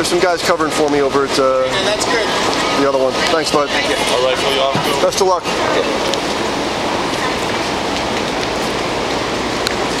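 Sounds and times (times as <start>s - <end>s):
city street traffic hiss: 0.0s - 10.0s.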